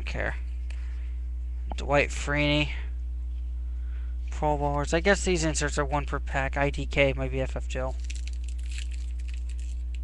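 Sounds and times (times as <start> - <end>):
steady low hum: 0.0 - 10.0
cards being handled: 7.9 - 10.0
foil pack rustling: 7.9 - 10.0.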